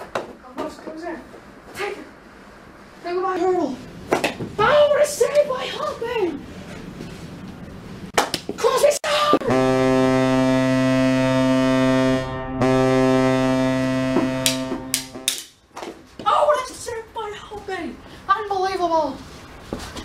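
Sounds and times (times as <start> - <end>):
deep goal horn tone: 9.4 - 15.4
sharp knocks: 14.1 - 16.0.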